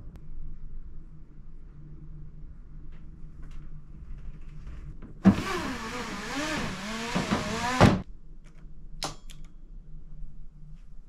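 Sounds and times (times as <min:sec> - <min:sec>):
sliding door scraping and squeaking: 0:05.3 - 0:08.0.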